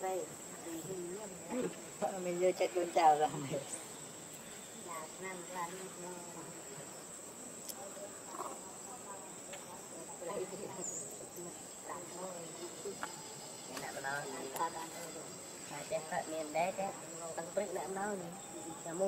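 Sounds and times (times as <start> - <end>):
faint voices: 0.0 - 19.0
insects droning: 0.0 - 19.0.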